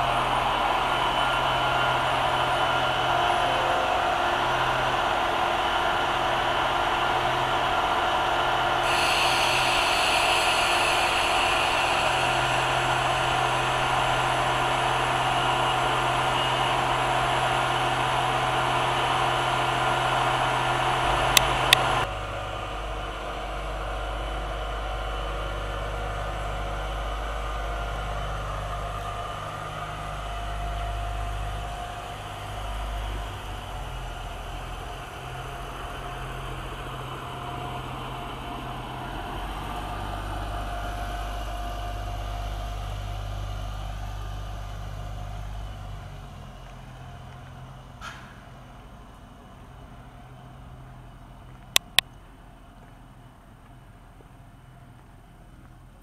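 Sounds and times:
high whine: 0.0s - 44.4s
diesel railcar engine hum: 0.0s - 56.0s.

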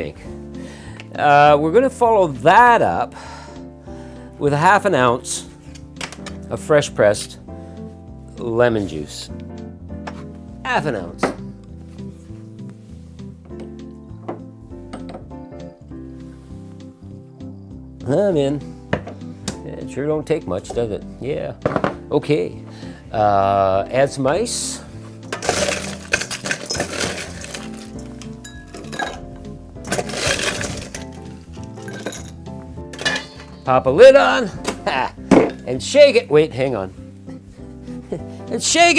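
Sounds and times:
background music with held notes: 0.0s - 38.9s
ice cubes clinking in glass: 25.3s - 29.2s, 29.9s - 32.4s.

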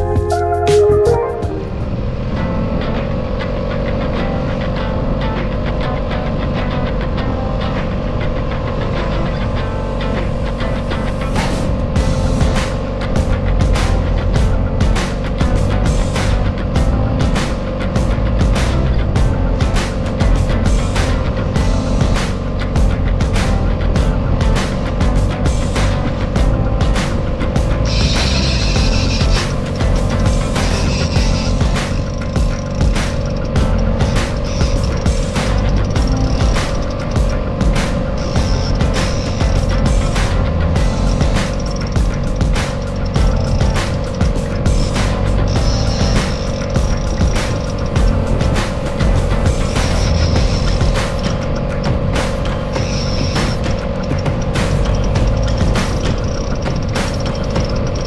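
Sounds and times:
music with heavy beat: 0.0s - 2.0s, 10.0s - 58.0s.

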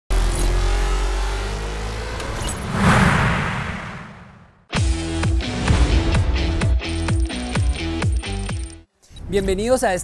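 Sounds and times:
rising tone: 0.1s - 4.7s
whoosh: 2.2s - 4.7s.

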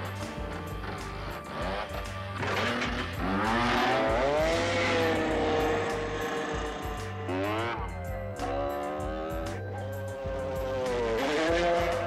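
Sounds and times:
background music: 0.0s - 12.0s
dirt bike engine revving: 0.8s - 12.0s.

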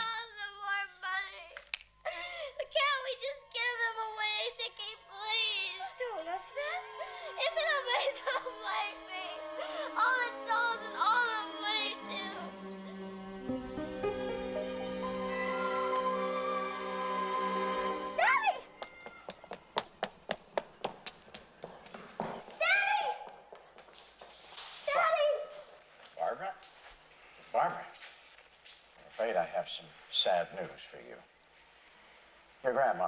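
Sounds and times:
girl crying hard: 2.1s - 3.2s
child's running footsteps: 18.8s - 27.0s.

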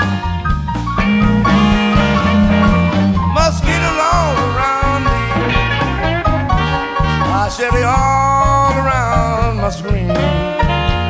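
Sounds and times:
bass line: 0.0s - 11.0s
tenor saxophone: 1.0s - 7.7s, 10.2s - 11.0s
trumpet: 1.3s - 8.4s, 10.2s - 11.0s.

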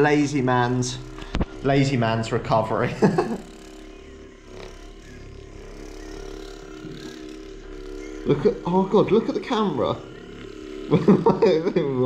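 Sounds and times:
massage gun humming: 0.0s - 12.0s
person laughing: 2.7s - 3.5s, 10.9s - 12.0s.

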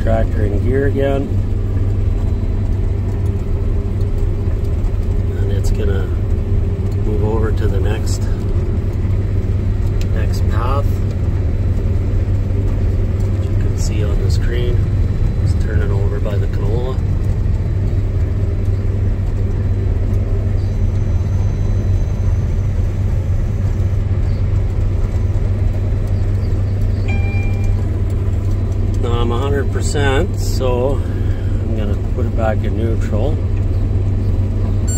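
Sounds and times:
combine harvester low drone: 0.0s - 34.9s.

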